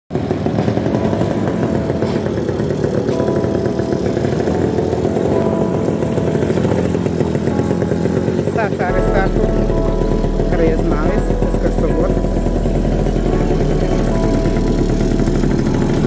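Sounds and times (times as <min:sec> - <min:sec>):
motorcycle engine running: 0:00.1 - 0:16.0.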